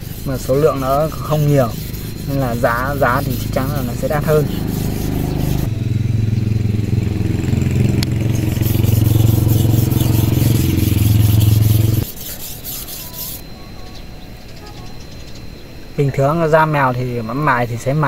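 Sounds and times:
knife scraping on whetstone: 0.0 - 5.7, 8.5 - 13.5
steady engine drone: 0.0 - 18.0.

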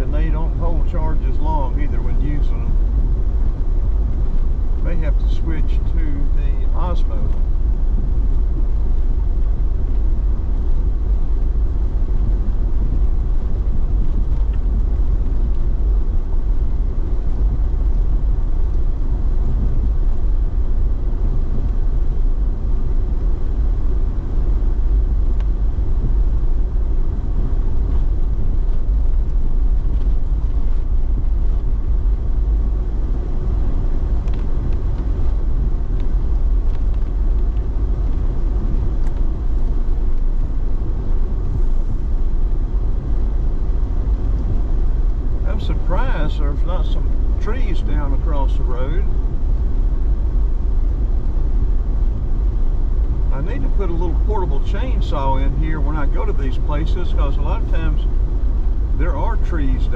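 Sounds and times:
vehicle driving on gravel road: 0.0 - 59.9.

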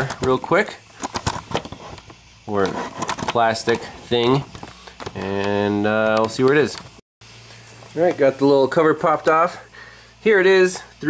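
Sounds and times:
person speaking: 2.5 - 6.9, 7.9 - 11.0
handling clicks and taps: 4.2 - 7.0.

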